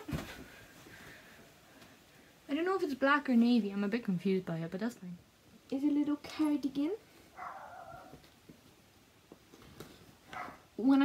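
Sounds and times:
faint drawn-out dog bark: 0:07.4 - 0:08.1.

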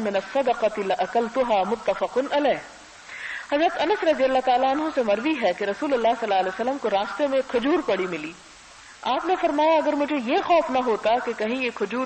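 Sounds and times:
woman speaking: 0:00.0 - 0:02.8, 0:03.5 - 0:08.4, 0:09.0 - 0:12.0.

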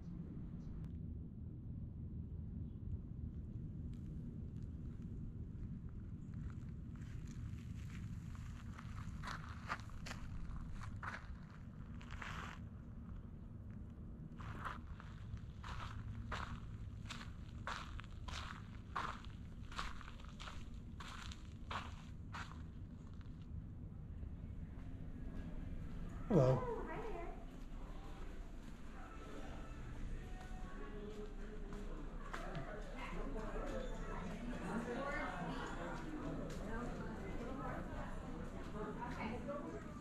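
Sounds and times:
footsteps on gravel: 0:07.0 - 0:12.6, 0:14.4 - 0:23.4.

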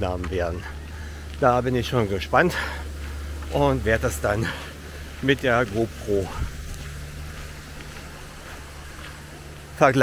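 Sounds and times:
faint background hiss: 0:00.0 - 0:10.0
steady low hum: 0:00.0 - 0:10.0.

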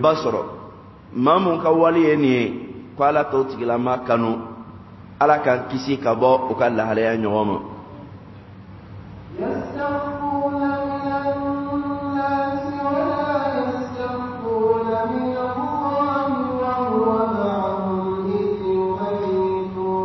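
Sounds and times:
man chanting melodically: 0:00.0 - 0:08.0, 0:09.3 - 0:20.0.

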